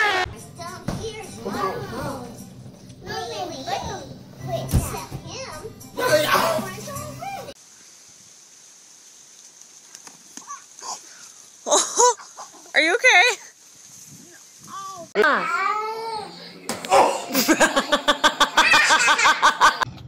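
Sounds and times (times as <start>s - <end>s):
toddler babbling and squealing: 14.7s - 16.3s.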